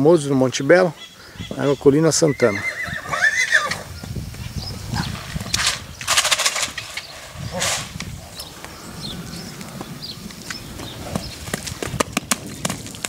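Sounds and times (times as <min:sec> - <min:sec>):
hooves trotting on sand: 0:01.0 - 0:13.0
horse whinnying: 0:01.6 - 0:03.9.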